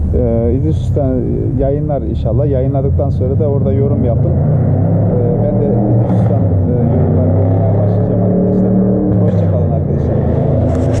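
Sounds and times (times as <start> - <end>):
man speaking: 0.0 - 10.4.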